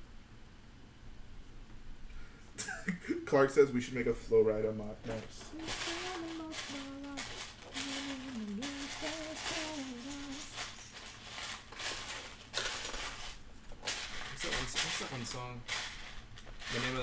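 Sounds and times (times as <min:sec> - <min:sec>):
man humming: 0:05.1 - 0:10.8
plastic bricks rattling: 0:05.1 - 0:17.0.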